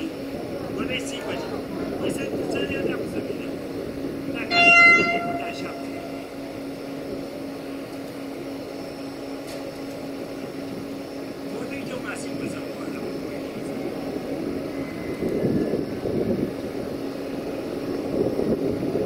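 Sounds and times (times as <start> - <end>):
steady low hum: 0.0 - 19.0
train horn blast: 4.4 - 7.0.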